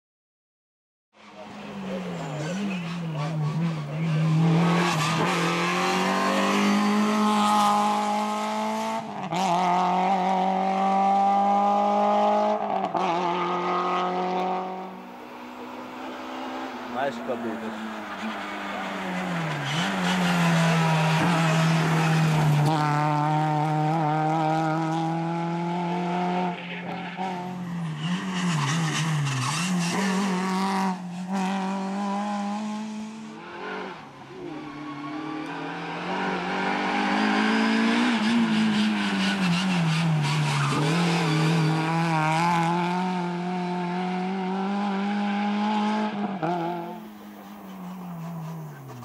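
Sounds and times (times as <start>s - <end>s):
rally car engine at high revs: 1.2s - 49.0s.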